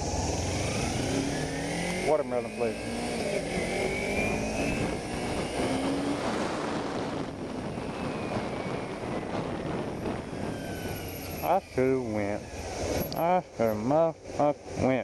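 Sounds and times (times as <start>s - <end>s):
motorcycle engine running: 0.0s - 15.0s
wind rush on microphone: 2.9s - 13.7s.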